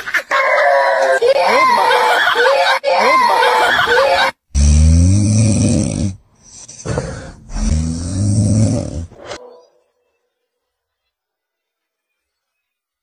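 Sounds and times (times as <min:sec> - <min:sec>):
man snoring loudly: 0:04.5 - 0:09.1
faint breath: 0:06.4 - 0:08.3.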